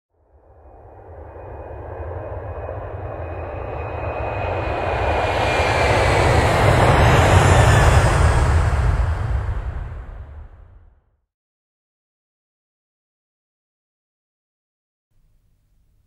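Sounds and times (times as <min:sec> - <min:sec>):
faint high tone sliding down: 0:00.3 - 0:06.4
rumbling whoosh: 0:05.0 - 0:11.0.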